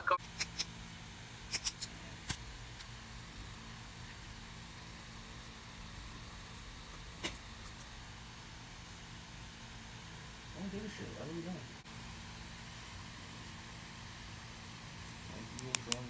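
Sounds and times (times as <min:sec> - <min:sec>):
sharp clicks: 0:15.5 - 0:16.0.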